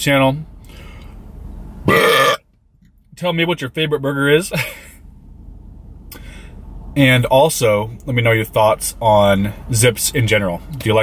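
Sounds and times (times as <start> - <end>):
man belching: 1.9 - 2.4.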